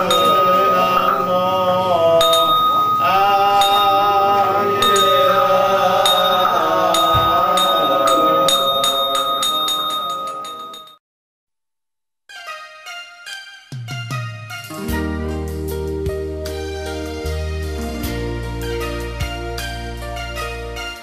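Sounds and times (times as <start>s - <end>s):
monks chanting: 0.0s - 10.0s
struck bell ringing: 0.0s - 11.0s.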